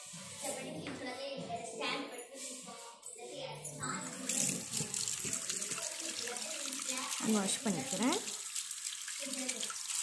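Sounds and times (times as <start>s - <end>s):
water running from a tap: 3.8s - 10.0s.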